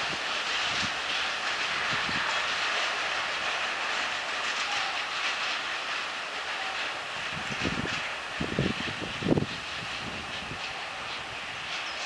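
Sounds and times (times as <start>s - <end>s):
steel wheels rolling on rail: 0.0s - 12.0s.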